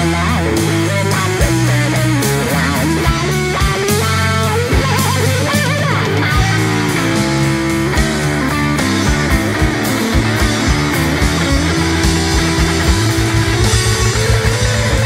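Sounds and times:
blues band playing: 0.0 - 15.0
lead electric guitar bends: 0.0 - 15.0.

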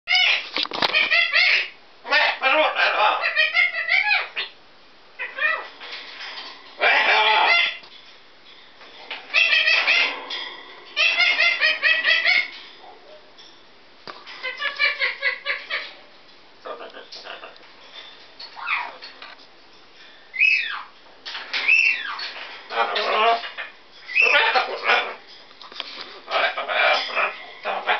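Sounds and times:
parrot calling: 0.1 - 4.6, 5.2 - 8.0, 9.1 - 13.2, 14.2 - 16.0, 16.6 - 19.2, 20.3 - 25.3, 26.1 - 27.9
parrot whistling: 20.3 - 20.9.

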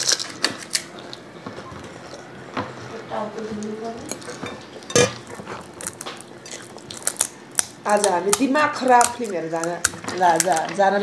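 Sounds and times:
crisp shells cracking and crunching: 0.0 - 1.2, 5.3 - 10.9.

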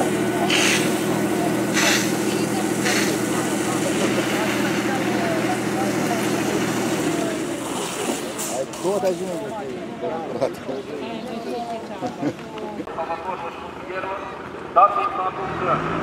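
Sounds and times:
hose jetting water: 0.0 - 9.6
pump engine running: 0.0 - 10.4
voices in background: 0.0 - 15.9.

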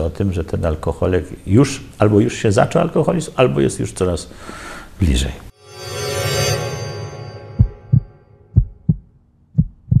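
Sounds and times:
heartbeat thumps: 7.6 - 10.0.

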